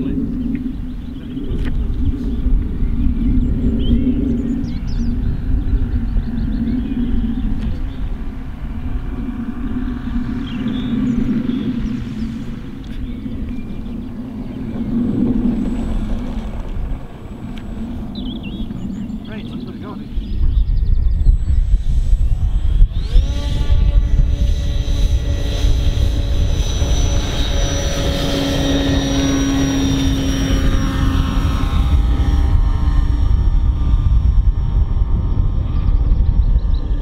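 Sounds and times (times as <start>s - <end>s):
model aircraft motor droning: 0.0s - 37.0s
wind rumble on microphone: 0.0s - 37.0s.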